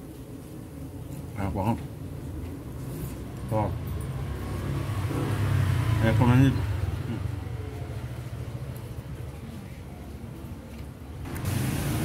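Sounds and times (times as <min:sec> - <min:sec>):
vehicle engine passing: 0:02.8 - 0:09.4, 0:11.2 - 0:12.0.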